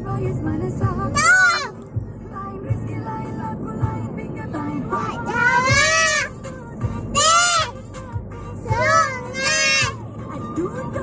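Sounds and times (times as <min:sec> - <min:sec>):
background music: 0:00.0 - 0:11.0
toddler singing: 0:05.0 - 0:06.3, 0:07.2 - 0:07.8, 0:08.7 - 0:10.0.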